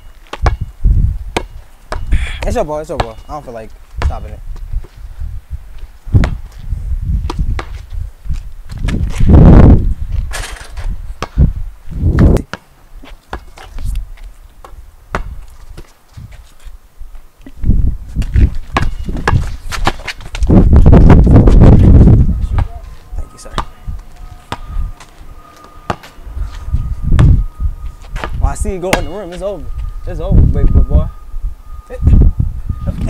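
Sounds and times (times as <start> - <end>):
basketball bouncing on concrete: 0.2 - 0.7, 1.3 - 3.3, 4.0 - 4.4, 6.2 - 6.6, 7.2 - 7.9, 11.2 - 11.5, 14.6 - 15.9, 18.2 - 21.7, 23.4 - 26.2, 27.1 - 27.4
sneakers scuffing: 12.5 - 21.8, 22.4 - 28.4
microphone rustle: 15.3 - 25.2.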